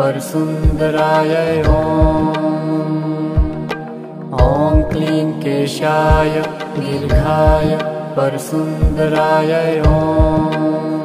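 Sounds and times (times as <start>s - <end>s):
person chanting a mantra: 0.0s - 11.0s
low drum beats: 1.6s - 2.3s, 3.4s - 3.7s, 4.4s - 5.0s, 7.1s - 7.7s, 9.8s - 10.5s.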